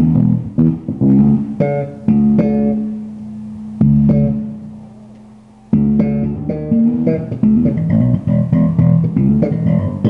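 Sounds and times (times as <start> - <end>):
electric bass note plucked: 0.0 - 4.8, 5.8 - 10.0.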